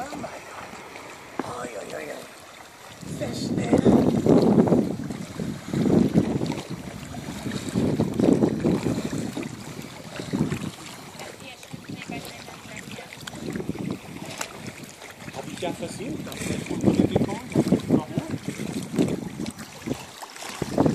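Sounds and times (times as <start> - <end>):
water splashing from swimming: 0.0 - 20.9
wind on microphone: 2.8 - 20.9.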